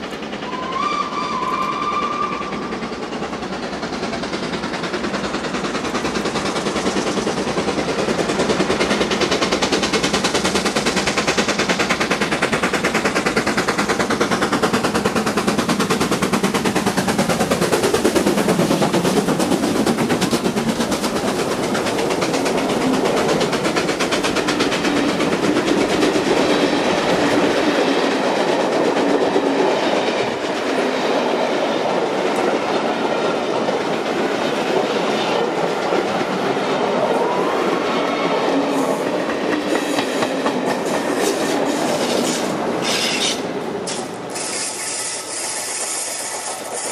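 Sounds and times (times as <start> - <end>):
steam locomotive exhaust beats: 0.0 - 46.9
train wheels clattering: 0.0 - 46.9.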